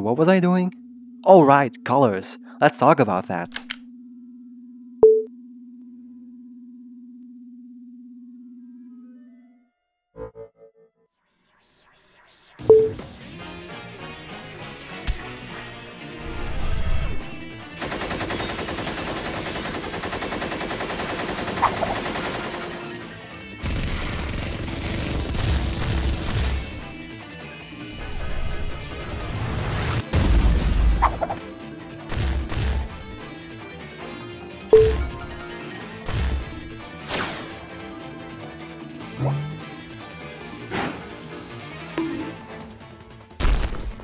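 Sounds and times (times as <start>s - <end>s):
low electronic buzzing hum: 0.4s - 9.6s
machine-gun fire: 17.8s - 23.0s, 23.6s - 26.8s
rumble of explosions: 23.6s - 26.9s.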